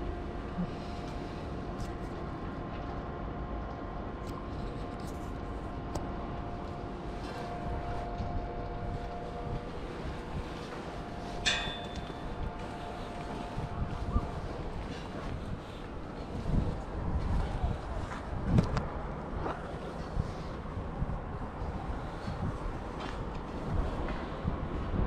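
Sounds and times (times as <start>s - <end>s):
faint humming tones: 0.0s - 25.0s
metal clink: 11.4s - 12.2s.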